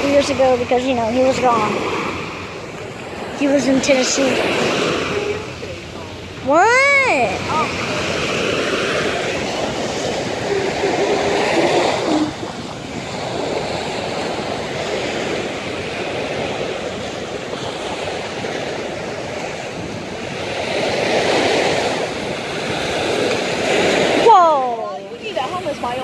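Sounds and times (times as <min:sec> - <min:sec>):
small waves breaking on beach: 0:00.0 - 0:26.0.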